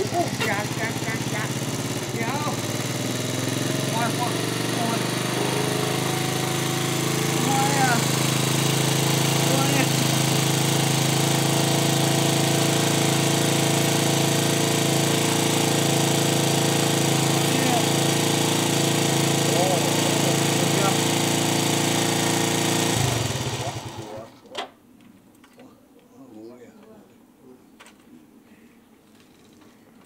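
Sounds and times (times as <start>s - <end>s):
scooter engine idling: 0.0s - 24.3s.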